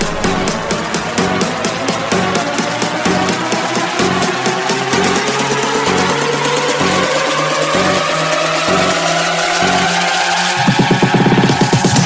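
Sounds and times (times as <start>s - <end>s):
rising synth sweep: 0.0s - 2.6s
fast repeating hits: 0.0s - 10.3s
stepping bass line: 0.0s - 11.5s.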